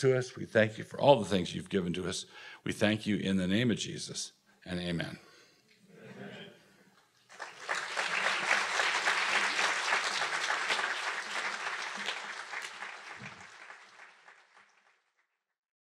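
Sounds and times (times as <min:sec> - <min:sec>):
audience applauding: 0:07.3 - 0:15.2.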